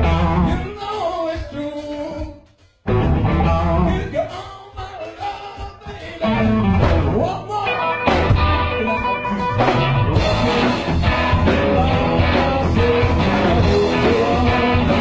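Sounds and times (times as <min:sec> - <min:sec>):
live blues-rock band playing: 0:00.0 - 0:02.2, 0:02.8 - 0:15.0.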